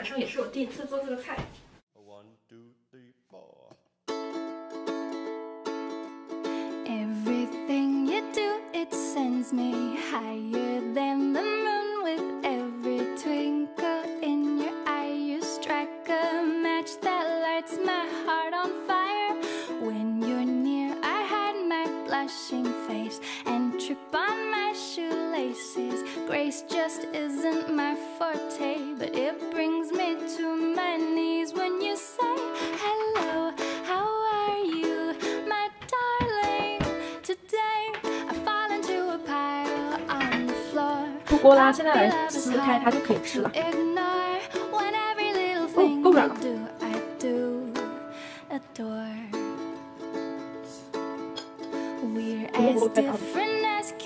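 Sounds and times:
light song with plucked strings: 4.1s - 54.0s.

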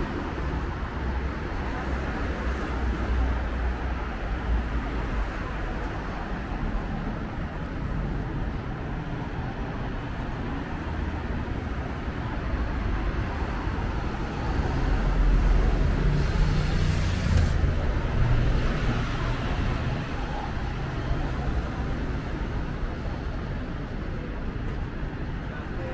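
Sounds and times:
cars driving past: 0.0s - 25.9s.

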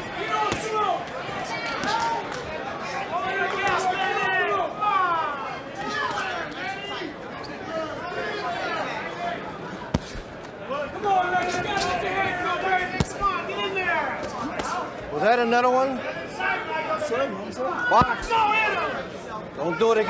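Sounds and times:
boxing gloves landing punches: 9.9s - 10.3s.

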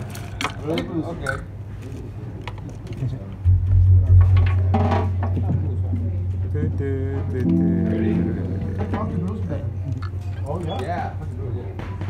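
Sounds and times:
loud low stage hum: 3.4s - 10.0s
short instrument notes: 7.4s - 9.8s.

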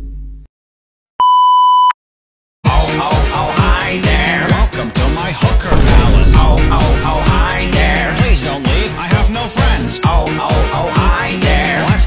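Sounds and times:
censor bleep tone: 1.2s - 2.0s
low rumbling music: 5.7s - 9.6s.

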